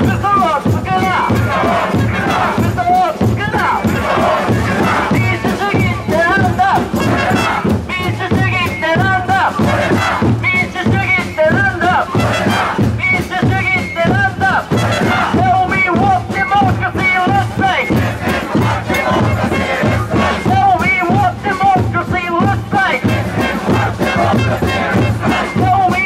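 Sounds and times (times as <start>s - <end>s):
man shouting into microphone: 0.0s - 17.9s, 20.3s - 23.1s, 24.2s - 26.0s
steady drumbeat: 0.0s - 26.0s
crowd chanting: 1.0s - 7.9s, 9.2s - 11.0s, 11.8s - 13.0s, 14.4s - 15.6s, 17.3s - 20.9s, 22.8s - 26.0s.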